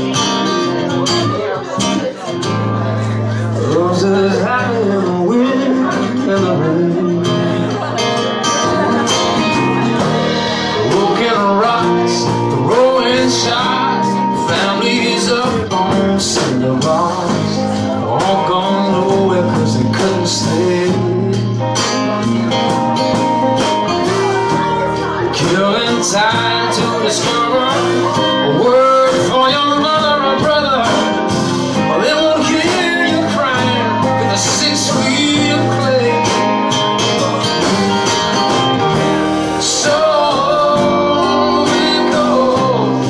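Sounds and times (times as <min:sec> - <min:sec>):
drums: 0:00.0 - 0:43.0
second guitar: 0:00.0 - 0:43.0
strummed acoustic guitar: 0:00.0 - 0:43.0
sliding melody line: 0:00.2 - 0:43.0.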